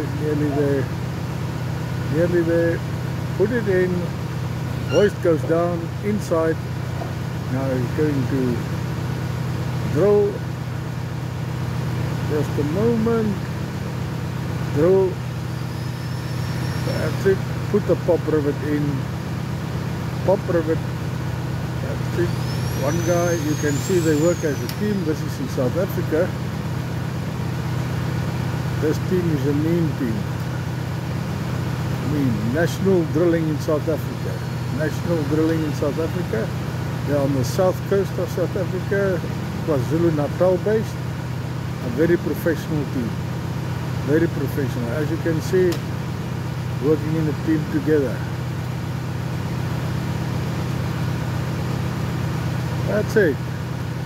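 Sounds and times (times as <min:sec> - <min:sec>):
drilling rig engine droning: 0:00.0 - 0:54.0.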